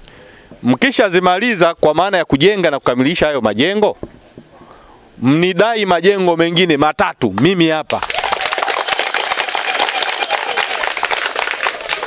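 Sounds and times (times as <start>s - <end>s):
crowd applauding: 7.9s - 12.0s.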